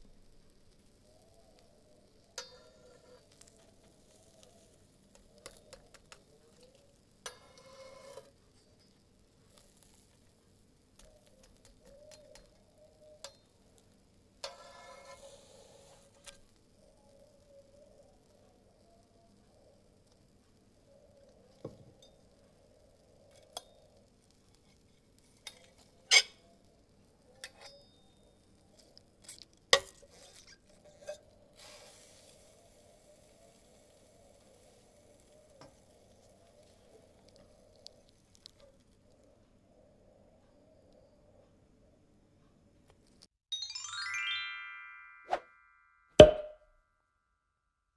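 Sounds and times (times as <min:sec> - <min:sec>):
faint ticks: 0:08.5 - 0:14.0.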